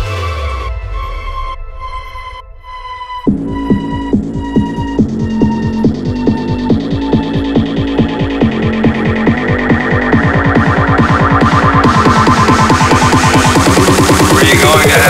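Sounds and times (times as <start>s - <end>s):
high synth line falling in pitch: 1.1s - 15.0s
kick and bass beat: 3.2s - 15.0s.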